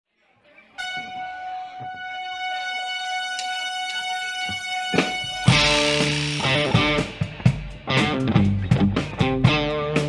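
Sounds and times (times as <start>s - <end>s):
held high amplified note: 0.8s - 7.5s.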